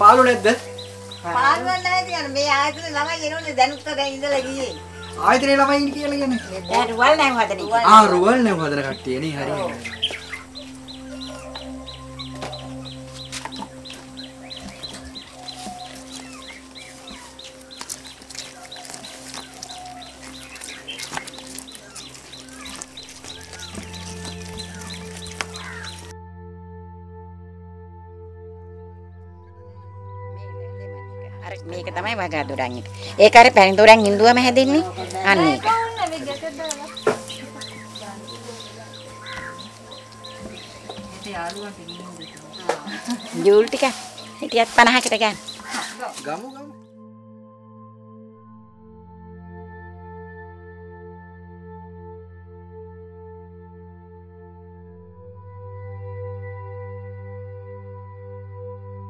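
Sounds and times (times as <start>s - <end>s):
ambient background music: 0.0s - 59.0s
bird peeping: 9.0s - 26.1s, 32.9s - 46.4s
chickens clucking: 34.7s - 46.5s.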